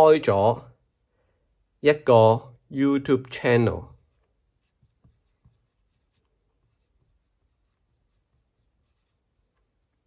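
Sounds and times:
marker pen writing on whiteboard: 0:03.9 - 0:10.0.

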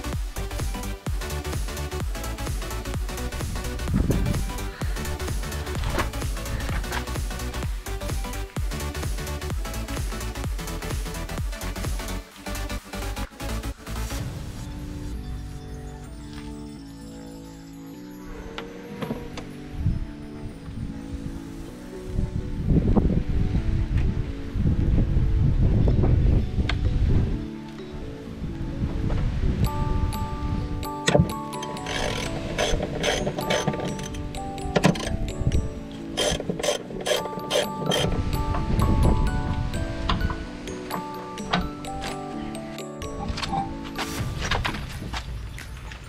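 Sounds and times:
background music: 0:00.0 - 0:46.0
socket wrench ratcheting: 0:31.6 - 0:34.2, 0:36.2 - 0:38.1.

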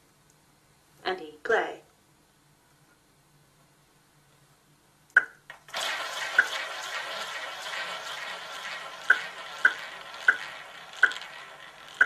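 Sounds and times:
roulette ball clicks: 0:05.2 - 0:12.0
roulette ball rolling: 0:05.2 - 0:12.0.

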